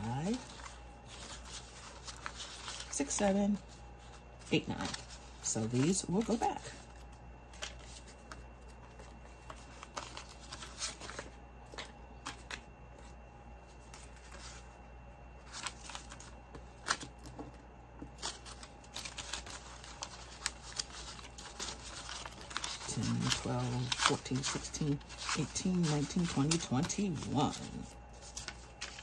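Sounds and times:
banknotes flicked and shuffled: 0.0s - 14.7s, 15.4s - 29.0s
faint low hum: 0.0s - 29.0s.

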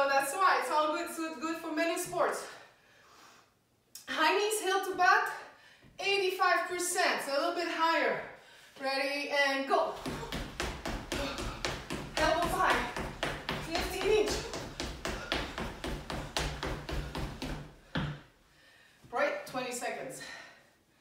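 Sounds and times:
running footfalls on tiled floor: 9.9s - 18.3s.

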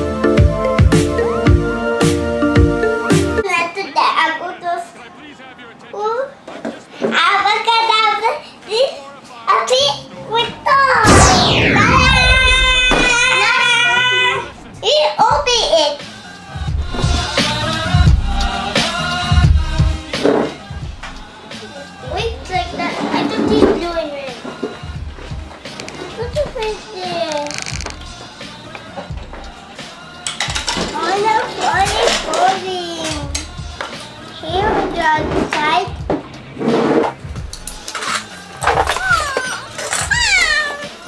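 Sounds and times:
background music: 0.0s - 4.8s, 9.5s - 41.0s.

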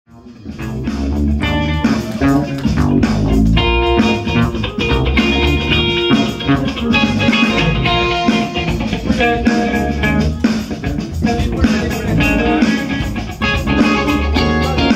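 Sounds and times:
live rock band playing: 0.1s - 14.9s.

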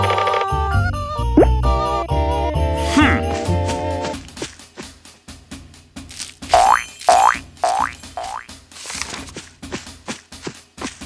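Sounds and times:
light background music: 0.0s - 11.0s
cartoon springy boings: 6.5s - 8.5s.

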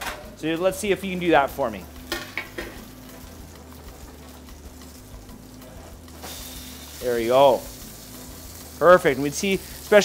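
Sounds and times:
fish sizzling in oil: 0.6s - 10.0s.

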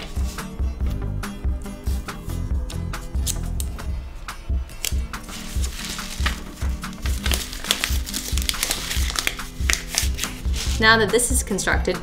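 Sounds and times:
background music with beat: 0.0s - 12.0s
paper crinkling and rustling: 4.8s - 10.8s.

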